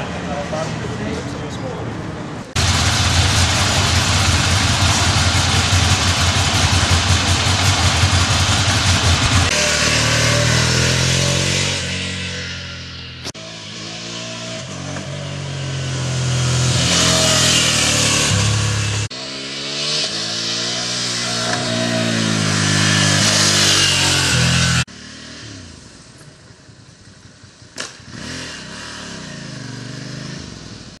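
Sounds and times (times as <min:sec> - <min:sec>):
motorcycle engine accelerating: 0:02.6 - 0:31.0.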